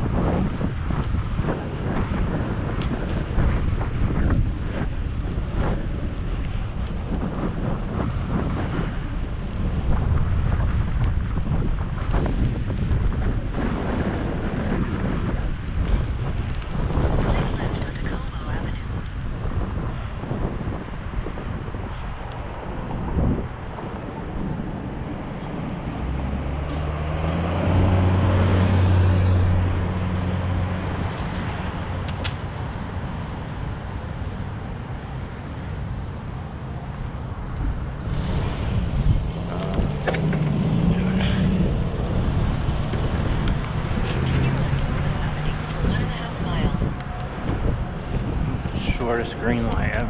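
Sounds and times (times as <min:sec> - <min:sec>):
low engine hum: 0:00.0 - 0:50.0
vehicle engines passing: 0:00.0 - 0:50.0.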